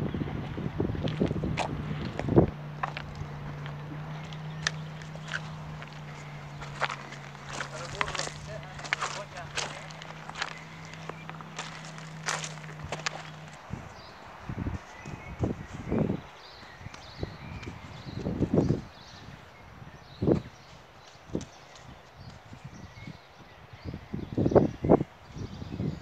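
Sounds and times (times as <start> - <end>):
steady low hum: 0.0 - 16.3
footsteps crunching on gravel: 1.0 - 18.9.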